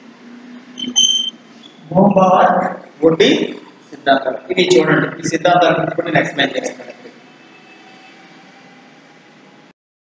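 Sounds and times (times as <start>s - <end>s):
steady background noise: 0.0s - 9.7s.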